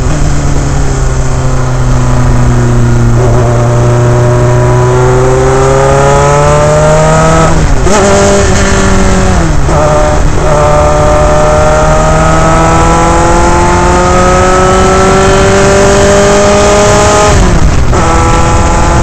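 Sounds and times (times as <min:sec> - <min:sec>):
engine blips on downshifts: 0:00.0 - 0:19.0
racing car engine accelerating: 0:00.0 - 0:19.0.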